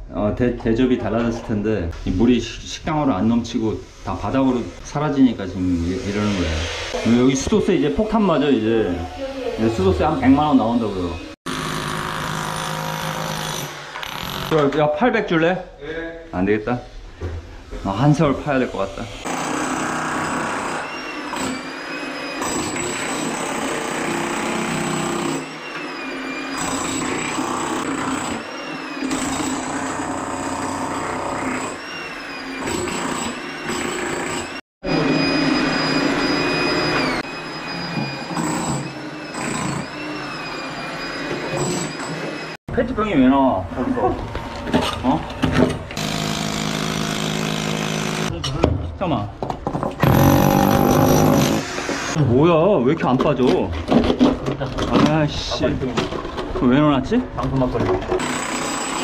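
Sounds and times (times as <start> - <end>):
demolition hammer chipping concrete: 19.3 - 21.6, 22.4 - 25.5, 46.0 - 48.3, 50.0 - 51.7, 58.1 - 59.0.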